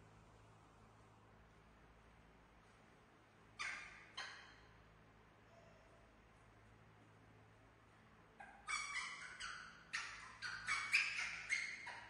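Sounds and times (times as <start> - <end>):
young monkey crying: 8.4 - 12.0.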